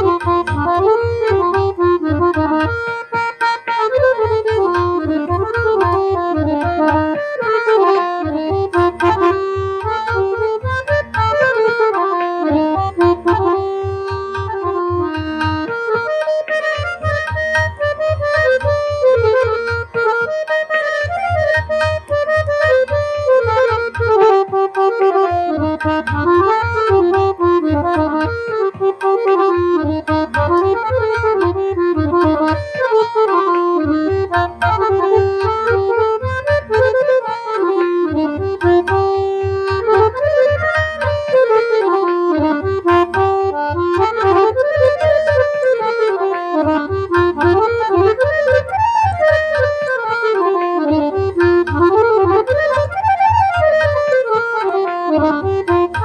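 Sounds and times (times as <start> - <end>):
harmonium melody: 0.0 - 56.0.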